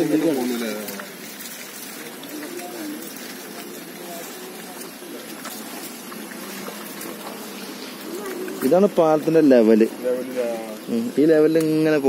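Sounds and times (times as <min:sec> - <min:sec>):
river water rushing: 0:00.0 - 0:11.4.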